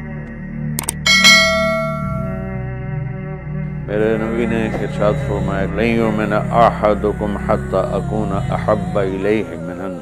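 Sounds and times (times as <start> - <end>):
background music drone: 0.0 - 10.0
notification bell chime: 1.1 - 2.4.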